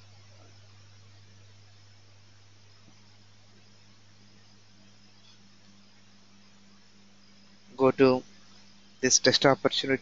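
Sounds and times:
faint hiss: 0.0s - 10.0s
low electrical hum: 0.0s - 10.0s.

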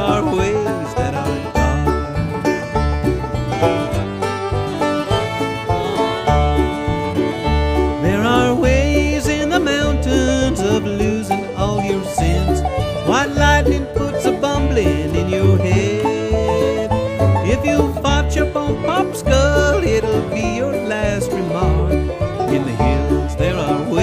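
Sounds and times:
banjo and guitar picking: 0.0s - 24.0s
sliding lead notes: 0.0s - 24.0s.

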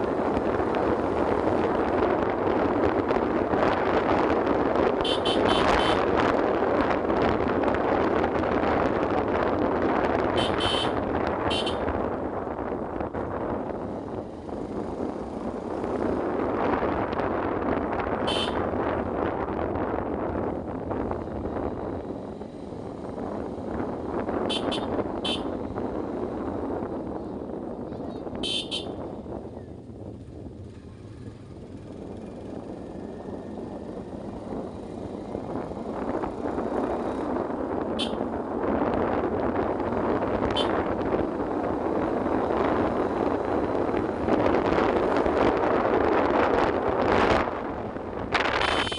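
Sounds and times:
motorcycle engine: 0.0s - 48.9s
wind noise: 0.0s - 48.9s
high-pitched horn toots: 5.0s - 6.0s, 10.4s - 11.9s, 18.3s - 18.6s, 24.5s - 25.5s, 28.4s - 29.0s, 38.0s - 38.2s, 40.5s - 40.8s, 48.6s - 48.9s.

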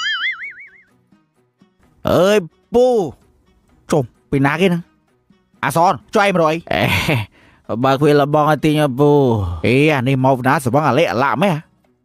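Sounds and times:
cartoon boing sound effect: 0.0s - 0.9s.

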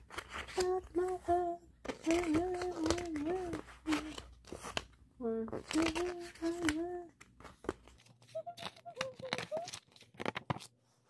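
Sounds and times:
paper pages rustling: 0.0s - 11.0s
woman humming: 0.6s - 4.2s, 5.2s - 7.2s, 8.3s - 9.8s.

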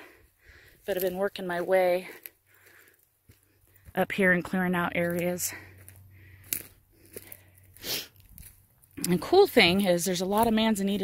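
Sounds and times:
breathy sniff: 7.3s - 8.2s.

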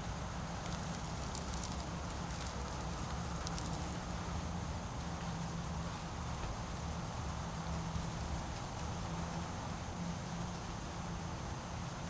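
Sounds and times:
dry leaves crackling and rustling: 0.0s - 9.8s.

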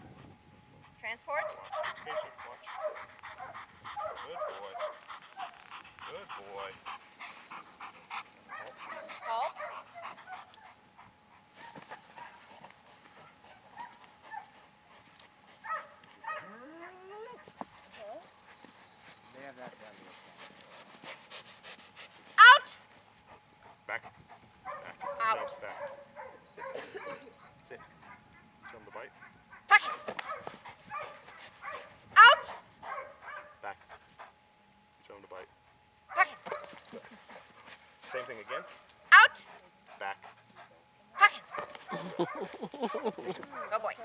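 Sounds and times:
dog whining and yelping: 15.6s - 18.3s, 22.4s - 22.8s, 29.7s - 32.6s.

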